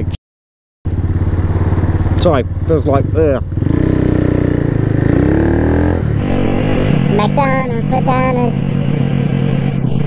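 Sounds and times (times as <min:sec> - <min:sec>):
motorcycle engine running: 0:00.9 - 0:10.0
wind and road noise: 0:00.9 - 0:10.0.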